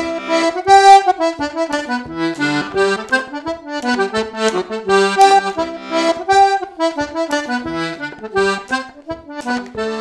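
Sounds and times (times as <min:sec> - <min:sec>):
button accordion playing a hornpipe: 0:00.0 - 0:10.0.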